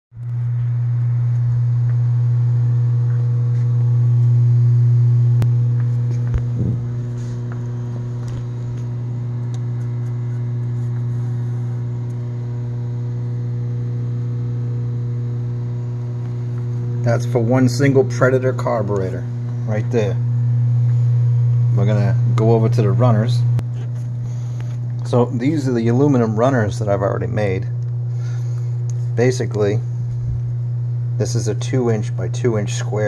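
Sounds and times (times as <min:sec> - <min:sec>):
electric motor hum: 0:00.2 - 0:33.0.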